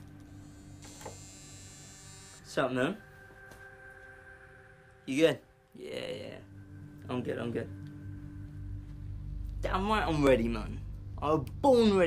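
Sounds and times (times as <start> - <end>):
faint high whine: 0.0 - 12.0
low steady hum: 0.0 - 12.0.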